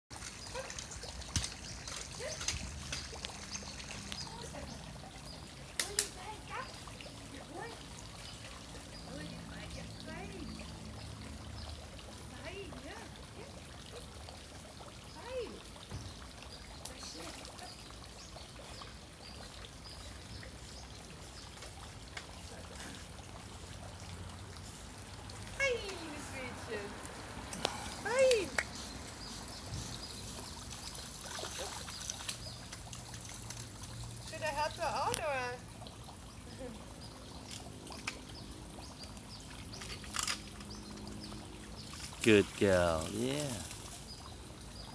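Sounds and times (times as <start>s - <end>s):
pool water trickling and lapping: 0.1s - 44.9s.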